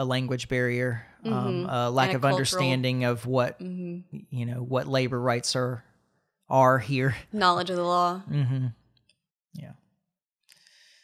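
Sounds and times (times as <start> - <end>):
person saying yeah quietly: 1.3 - 2.9
faint breath: 10.5 - 11.0.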